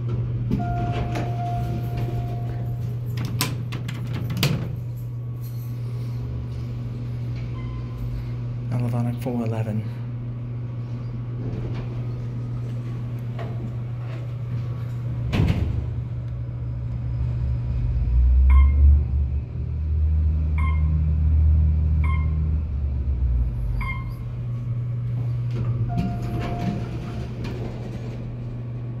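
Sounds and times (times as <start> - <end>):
elevator clunk: 0.0 - 5.2, 11.3 - 16.3, 23.8 - 29.0
elevator doors sliding: 0.0 - 8.9, 10.6 - 29.0
elevator rumble and hum: 0.0 - 29.0
long tone: 0.6 - 2.9
short beeps: 18.5 - 18.8, 20.6 - 21.0, 22.0 - 22.4, 23.8 - 24.2.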